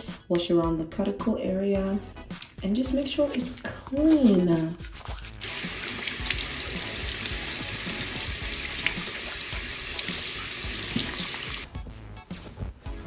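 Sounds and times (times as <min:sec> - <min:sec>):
faucet water running into sink: 0:05.4 - 0:11.7.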